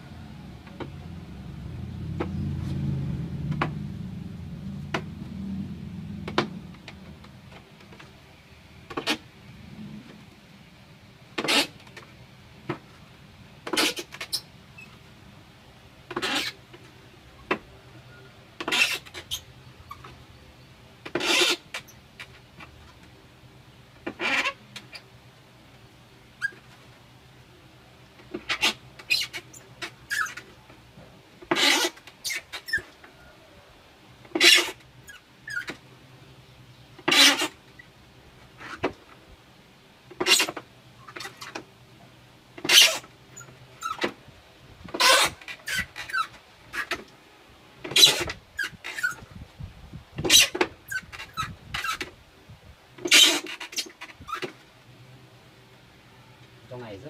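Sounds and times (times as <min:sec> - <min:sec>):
plastic container scraping and creaking: 0:08.9 - 0:10.3, 0:11.4 - 0:12.1, 0:13.6 - 0:15.0, 0:16.1 - 0:16.9, 0:18.6 - 0:20.2, 0:21.0 - 0:23.2, 0:31.4 - 0:33.1, 0:37.0 - 0:37.7, 0:40.1 - 0:41.7, 0:44.8 - 0:47.1, 0:47.8 - 0:49.4, 0:50.2 - 0:52.2, 0:53.0 - 0:54.7.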